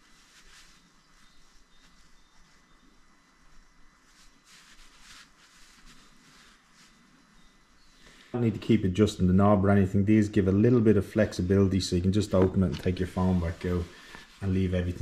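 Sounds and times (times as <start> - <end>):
soft rustles: 0.0 - 8.8, 10.6 - 15.0.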